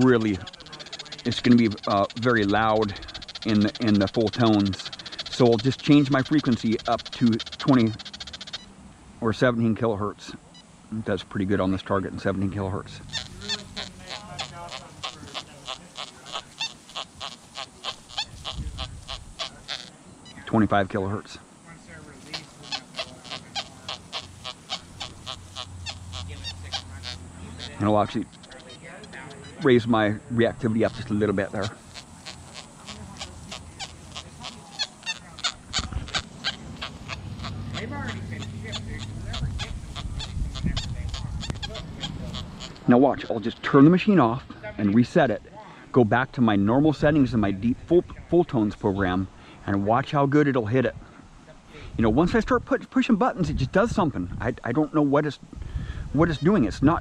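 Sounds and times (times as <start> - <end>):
metal detector beeps and tones: 0.0 - 8.7, 13.0 - 20.8
steady ticking: 0.0 - 8.8, 12.4 - 44.0.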